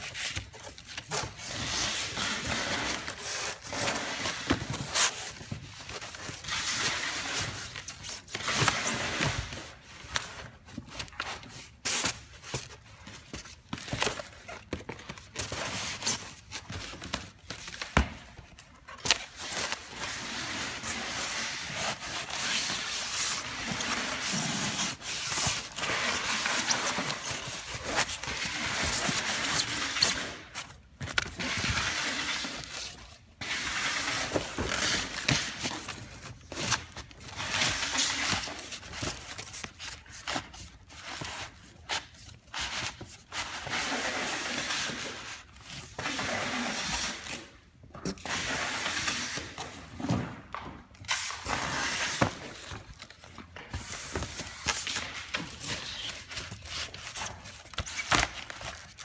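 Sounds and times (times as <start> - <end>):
cardboard and foam rustling: 0.0 - 59.0.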